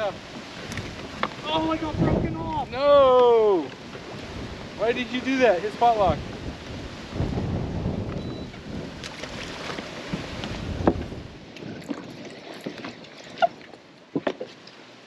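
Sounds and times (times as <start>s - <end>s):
wind buffeting microphone: 0.0s - 12.2s.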